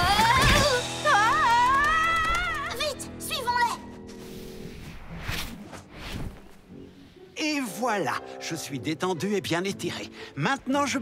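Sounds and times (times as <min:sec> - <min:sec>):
short swishes: 0:04.2 - 0:06.6.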